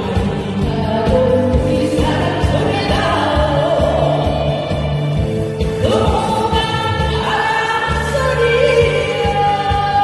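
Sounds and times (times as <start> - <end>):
amplified backing track: 0.0 - 10.0
women singing: 0.0 - 10.0.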